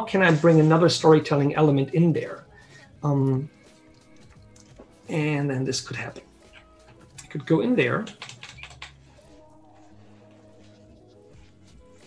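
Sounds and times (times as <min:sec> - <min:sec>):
computer keyboard clicks: 0:06.5 - 0:09.0.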